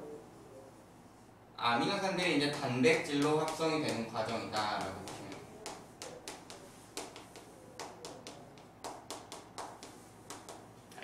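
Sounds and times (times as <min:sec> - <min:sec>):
chalk writing on blackboard: 0:02.4 - 0:10.7.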